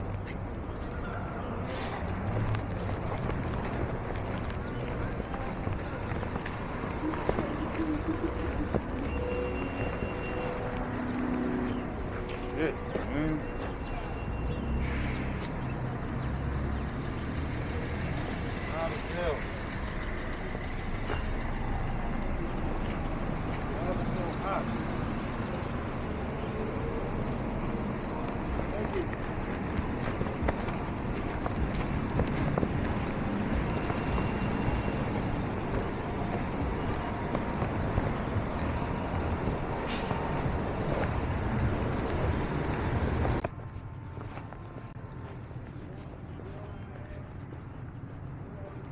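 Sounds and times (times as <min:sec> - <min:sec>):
cars passing: 0:00.0 - 0:48.9
low traffic rumble: 0:00.0 - 0:48.9
footsteps: 0:01.6 - 0:15.7, 0:28.0 - 0:48.9
indistinct voices: 0:03.6 - 0:15.4.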